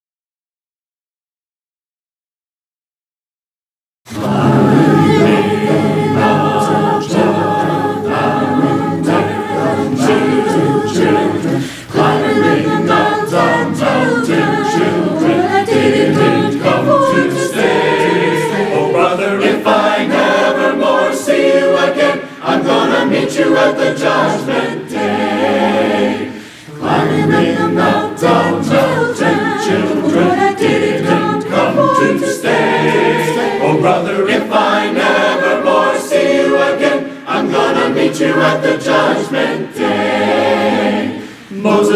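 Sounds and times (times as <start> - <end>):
mixed choir singing gospel: 4.1 - 41.9.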